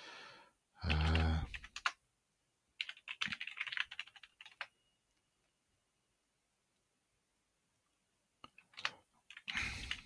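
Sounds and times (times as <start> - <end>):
computer keyboard typing: 0.8 - 2.0, 2.8 - 4.8, 8.4 - 10.0.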